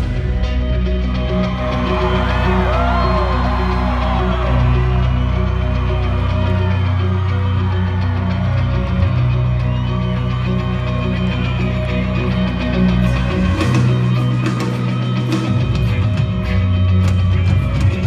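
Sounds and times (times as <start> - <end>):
live rock band music: 0.0 - 18.0
low bass notes: 0.0 - 18.0
crowd whoops: 1.0 - 15.8.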